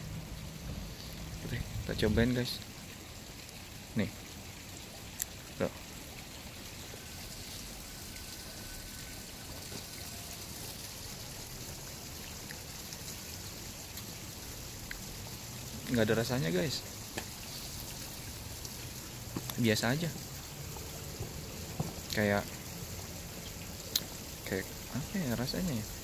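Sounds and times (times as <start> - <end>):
outdoor background hiss: 0.0 - 26.0.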